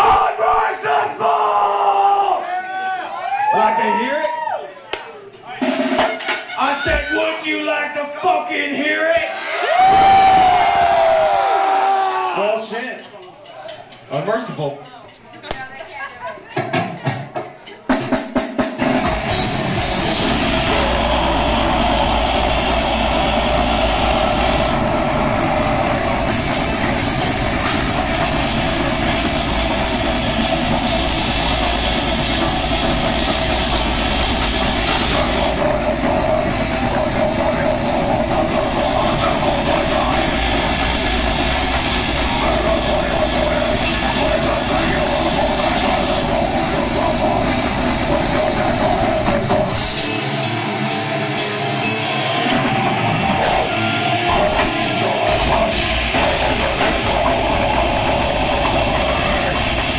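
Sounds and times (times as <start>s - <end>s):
drums: 0.0s - 59.9s
distorted guitars: 18.6s - 59.9s.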